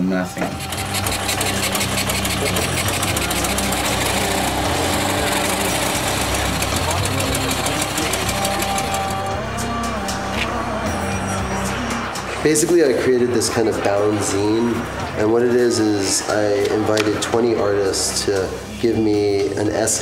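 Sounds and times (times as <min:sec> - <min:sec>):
motorcycle engine running: 0:00.5 - 0:11.6.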